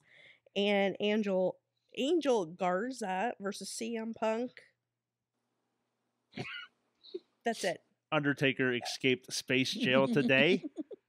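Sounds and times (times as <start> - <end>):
brief high-pitched vocal sound: 8.7 - 10.7.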